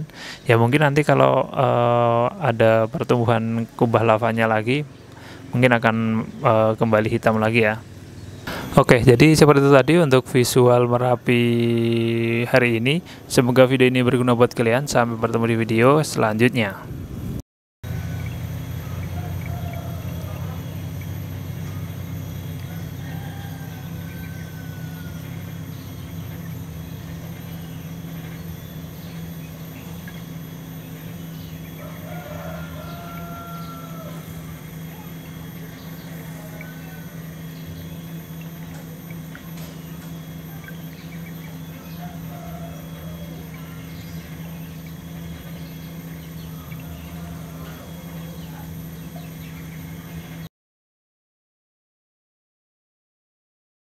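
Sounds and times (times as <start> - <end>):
steady low hum: 0.0 - 50.5
faint bird calls: 17.9 - 50.5.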